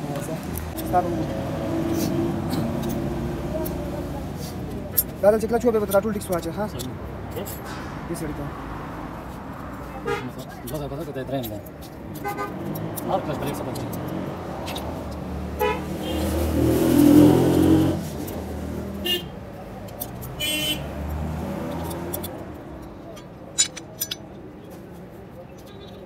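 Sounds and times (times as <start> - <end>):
vehicle engine passing: 0.0 - 4.9, 12.4 - 19.0, 20.1 - 22.8.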